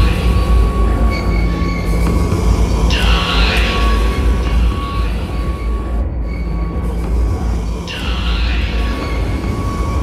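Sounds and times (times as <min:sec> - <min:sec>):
death metal music: 0:00.0 - 0:10.0.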